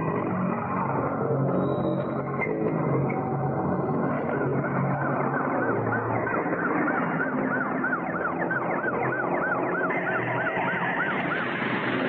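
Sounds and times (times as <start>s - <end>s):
police siren yelping: 3.5s - 12.0s
steady rush of noise: 8.7s - 12.0s.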